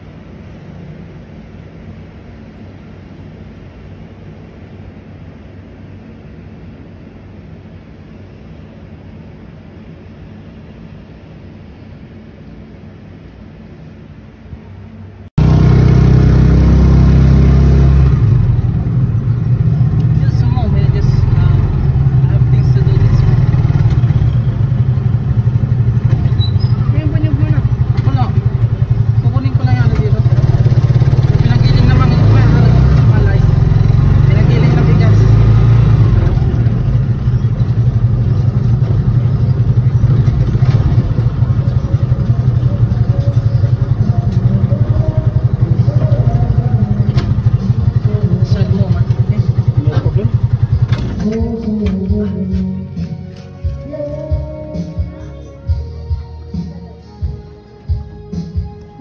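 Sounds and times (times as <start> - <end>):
small motorcycle engine rumbling: 11.6 - 56.7.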